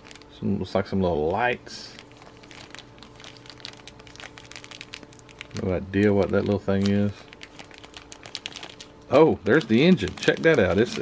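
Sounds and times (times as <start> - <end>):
plastic bags crinkling: 0.0 - 0.4, 1.3 - 11.0.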